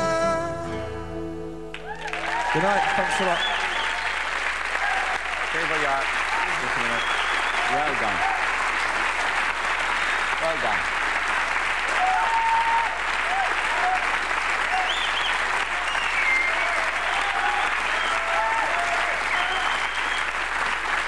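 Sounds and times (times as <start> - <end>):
audience applauding: 1.7 - 21.0.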